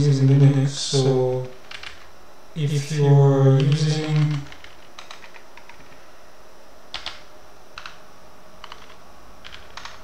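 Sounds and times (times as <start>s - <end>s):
computer keyboard keystrokes: 1.6s - 2.1s, 3.6s - 6.0s, 6.9s - 8.0s, 8.6s - 10.0s.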